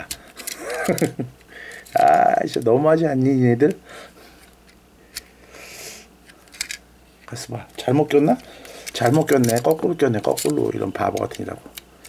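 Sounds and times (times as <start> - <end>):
man's stifled laugh: 0.4 - 1.4.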